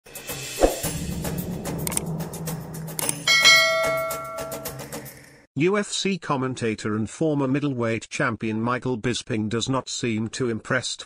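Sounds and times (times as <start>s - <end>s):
intro music with a beat: 0.1s - 5.1s
notification bell ding: 3.3s - 4.7s.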